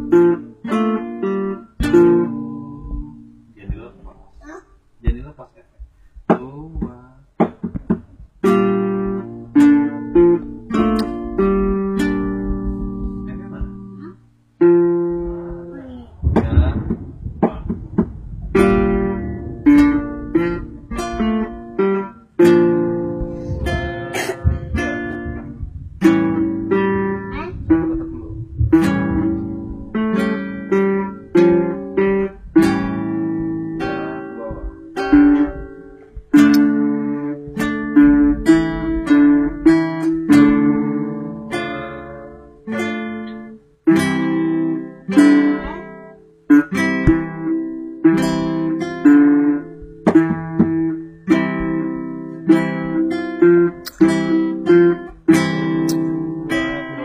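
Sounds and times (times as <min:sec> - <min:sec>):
acoustic guitar plucking: 0:00.0 - 0:57.0.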